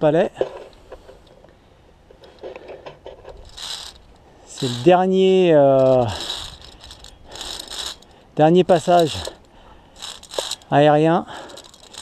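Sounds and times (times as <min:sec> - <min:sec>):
faint rustle with light clicks: 0:00.4 - 0:12.0.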